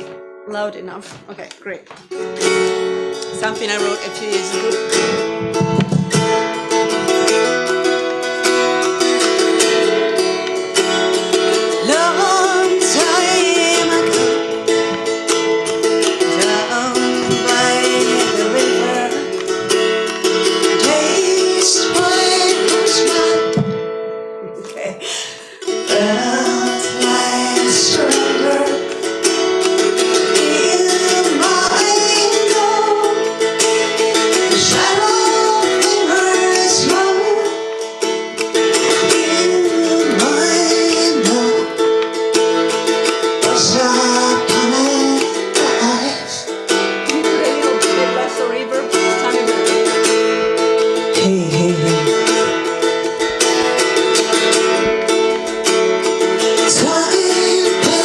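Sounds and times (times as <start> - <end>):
acoustic guitar: 0.0 - 58.0.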